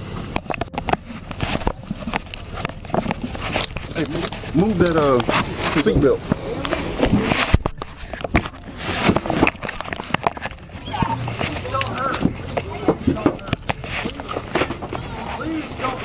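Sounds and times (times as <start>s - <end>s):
camera rubbing against clothing: 0.2s - 16.0s
muffled voices: 0.4s - 16.0s.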